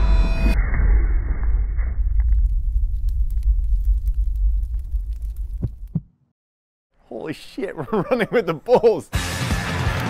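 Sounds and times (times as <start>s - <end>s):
faint crackles: 2.1s - 6.0s.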